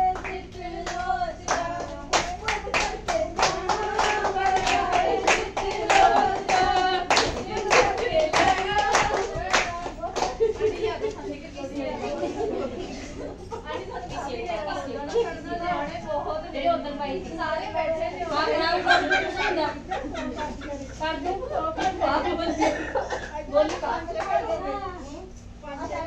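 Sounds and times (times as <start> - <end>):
women clapping in an even beat: 0.0 - 10.7
chatter: 0.0 - 26.0.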